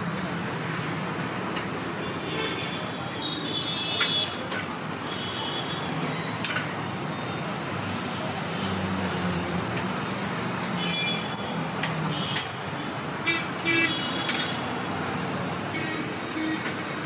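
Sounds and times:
steel serving ware clink: 6.4 - 6.7, 14.3 - 14.7.

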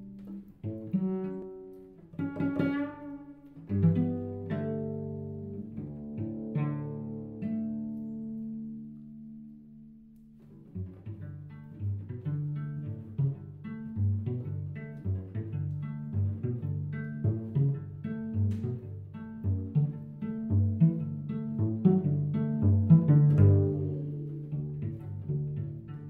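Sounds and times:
plucked cello: 0.0 - 26.0.

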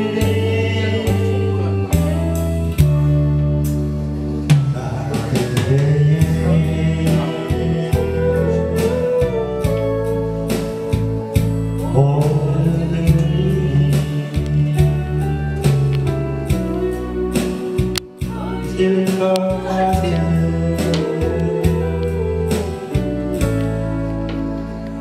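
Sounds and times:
man singing into a microphone: 0.0 - 2.3, 4.6 - 23.8
karaoke backing track: 0.0 - 25.0.

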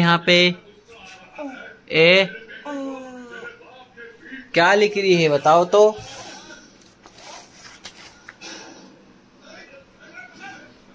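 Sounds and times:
paper rustling and scraping: 5.0 - 8.4.

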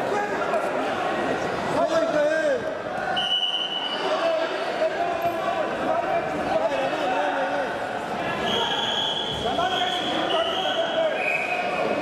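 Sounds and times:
referee whistle blasts: 3.2 - 4.0, 8.5 - 11.9.

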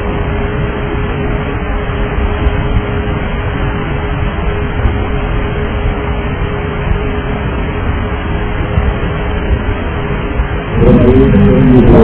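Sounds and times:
constant hum: 0.0 - 12.0
engine and airflow rush: 0.0 - 12.0
wavering pitch sound: 10.7 - 12.0.

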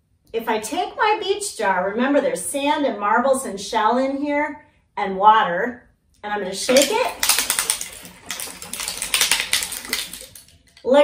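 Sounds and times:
water sloshing: 6.7 - 10.8.

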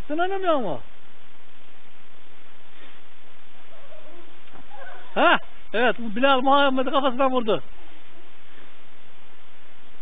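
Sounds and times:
outdoor background hiss: 0.0 - 10.0
distant voices calling out: 2.9 - 9.0.

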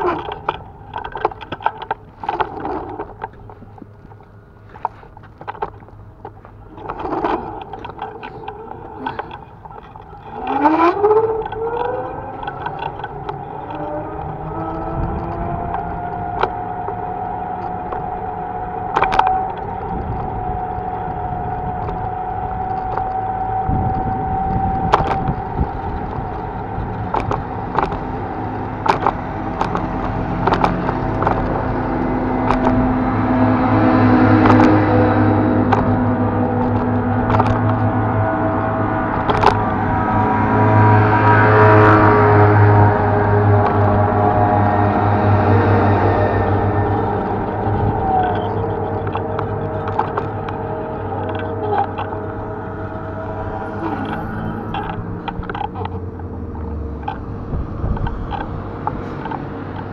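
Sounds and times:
road rumble: 0.0 - 59.9
electric motor whine: 5.4 - 59.9.

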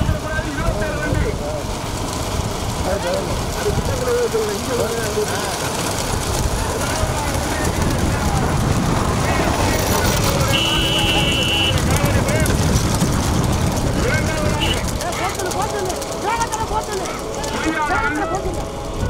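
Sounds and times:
bullock carts rumbling past: 0.0 - 19.0
people shouting: 6.8 - 12.4, 14.2 - 18.7.

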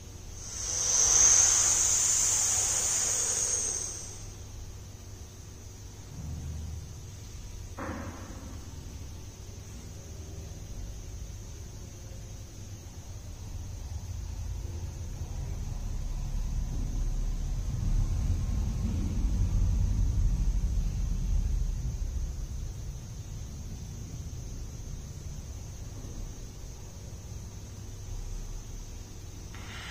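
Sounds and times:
steady high hiss: 0.0 - 29.9.

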